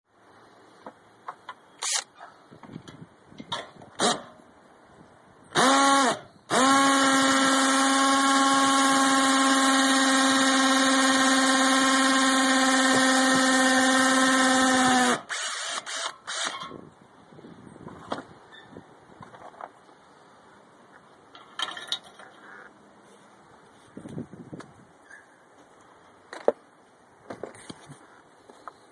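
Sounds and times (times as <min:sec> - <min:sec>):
power drill whining into brick: 0:01.8 - 0:02.1, 0:05.6 - 0:16.8.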